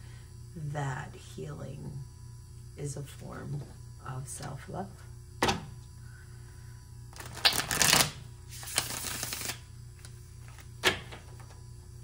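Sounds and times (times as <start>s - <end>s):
cards rattling while shuffled: 7.2s - 9.6s.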